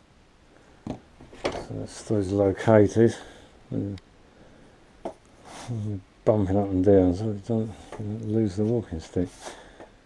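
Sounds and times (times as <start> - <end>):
man speaking: 1.6 - 4.0, 5.7 - 9.5.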